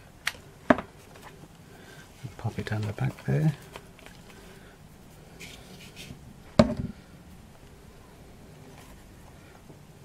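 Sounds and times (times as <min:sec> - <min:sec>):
hard object knocking on table: 0:06.6 - 0:06.9.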